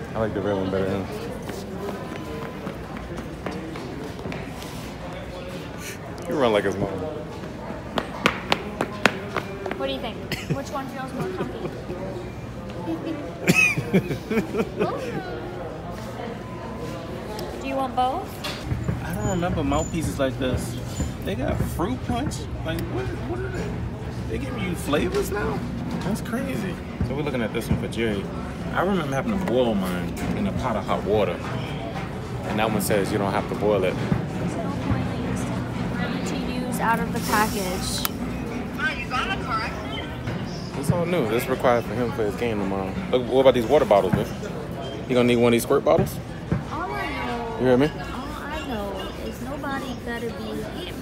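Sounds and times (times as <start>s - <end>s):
store hum: 0.0s - 51.0s
laughter: 10.3s - 12.1s, 12.9s - 15.4s.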